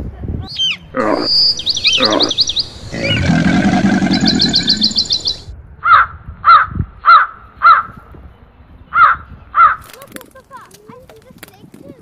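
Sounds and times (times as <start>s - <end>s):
bird cawing: 1.8s - 7.8s.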